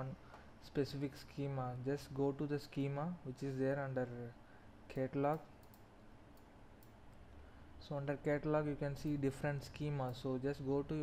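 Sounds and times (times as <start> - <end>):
low room noise: 0.0 - 11.0
computer mouse clicks: 5.3 - 7.0.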